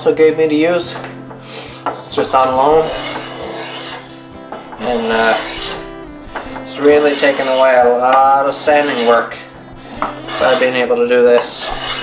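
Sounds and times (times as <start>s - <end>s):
spokeshave shaving wood: 2.2s - 12.0s.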